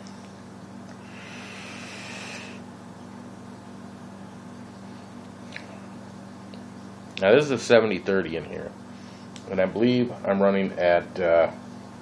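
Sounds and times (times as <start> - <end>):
steady low hum: 0.0 - 12.0
vape coil hissing sizzle: 1.0 - 2.6.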